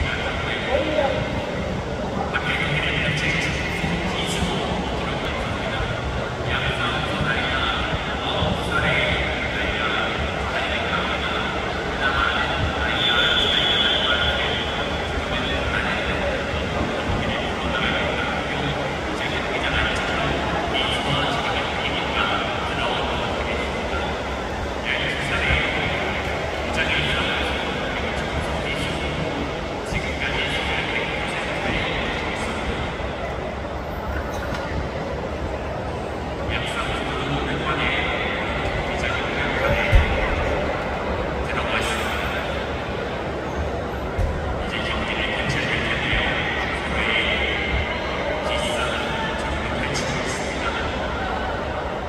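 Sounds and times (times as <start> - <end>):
person talking: 0.0 - 1.4
steady background noise: 0.0 - 52.0.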